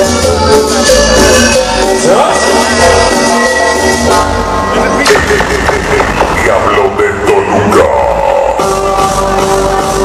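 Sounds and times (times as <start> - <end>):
loud dance music: 0.0 - 10.0
bass beat: 4.0 - 10.0.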